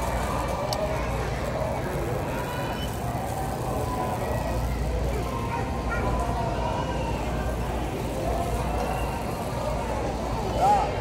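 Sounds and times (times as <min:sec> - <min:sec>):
faint voices of shoppers: 0:00.0 - 0:11.0
wheels rolling on concrete: 0:00.0 - 0:11.0.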